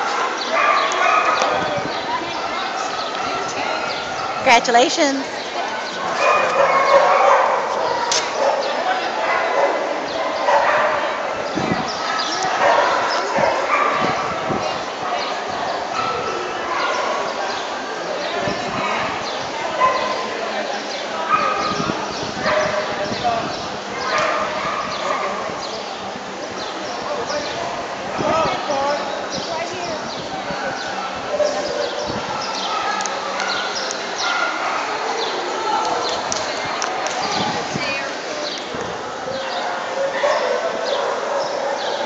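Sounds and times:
dogs barking and yipping: 0.0s - 4.8s, 5.8s - 17.6s, 18.4s - 20.4s, 21.1s - 23.2s, 23.8s - 25.6s, 30.4s - 37.6s, 38.7s - 42.0s
crowd chatter: 0.0s - 42.0s.

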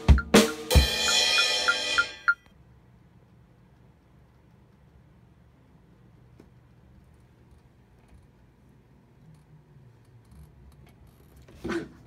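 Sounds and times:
drum hits with sticks: 0.0s - 2.4s
low room noise: 0.0s - 12.0s
cymbal crash ringing: 0.4s - 2.3s.

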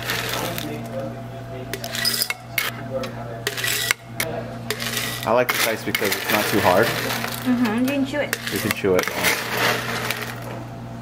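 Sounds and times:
steady low hum: 0.0s - 11.0s
ice clattering in scoop and jar: 4.7s - 7.5s, 8.3s - 10.5s.

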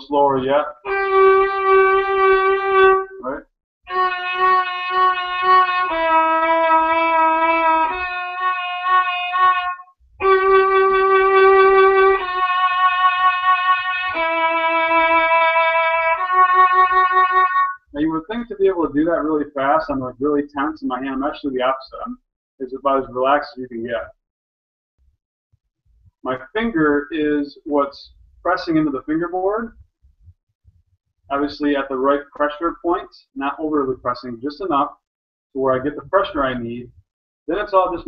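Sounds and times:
violin bowed notes with vibrato: 0.8s - 17.8s.

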